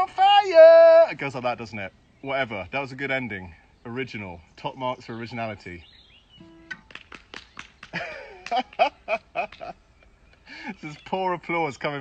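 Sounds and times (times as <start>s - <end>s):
acoustic guitar notes: 6.4s - 7.0s.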